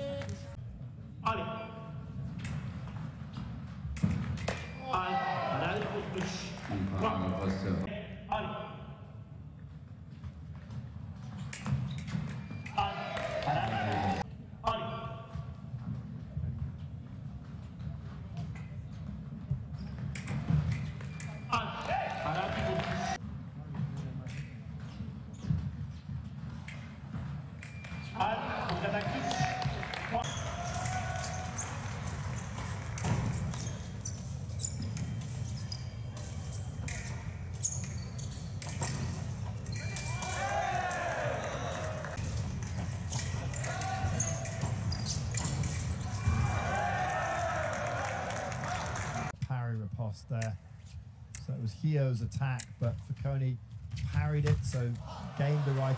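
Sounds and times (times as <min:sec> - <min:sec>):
low hall hum: 0:00.0 - 0:55.9
fencing clicks and stamps: 0:27.6 - 0:28.1, 0:32.1 - 0:40.8, 0:41.6 - 0:46.1.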